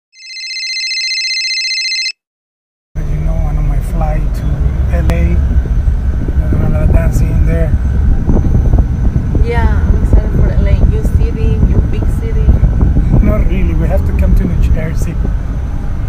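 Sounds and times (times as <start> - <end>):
electronic phone ringing: 0.1 - 2.2
bus rumble from inside: 3.0 - 16.0.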